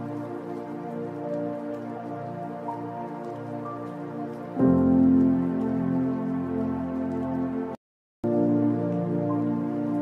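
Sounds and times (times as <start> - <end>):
chicken deep-frying in oil: 0.0 - 7.8
soft background music: 0.0 - 10.0.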